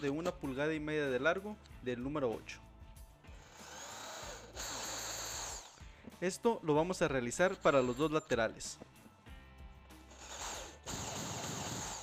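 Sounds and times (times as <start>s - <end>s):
electric drill boring into board: 3.3s - 5.8s, 10.1s - 12.0s.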